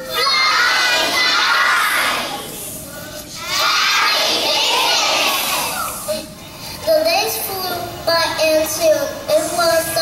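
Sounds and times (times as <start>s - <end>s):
children's choir singing: 0.0s - 2.6s, 3.5s - 5.9s.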